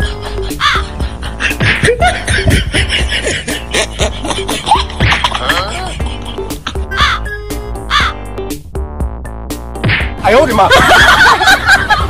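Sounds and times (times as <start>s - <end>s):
background music: 0.0s - 12.0s
crow-like caws: 0.5s - 0.9s, 6.8s - 7.3s, 7.9s - 8.2s.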